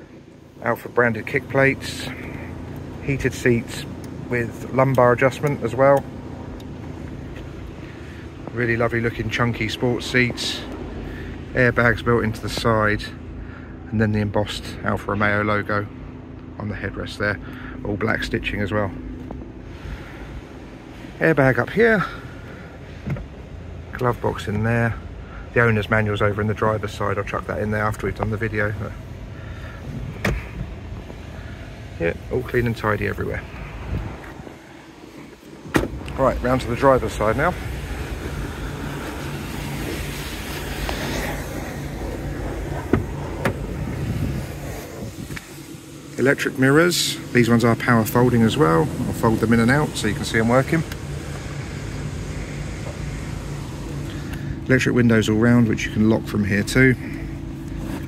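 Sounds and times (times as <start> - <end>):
low ambient rumble and hiss: 0.0 - 58.0
car door shutting: 23.0 - 23.4, 29.9 - 31.2, 33.9 - 36.6, 38.0 - 45.6.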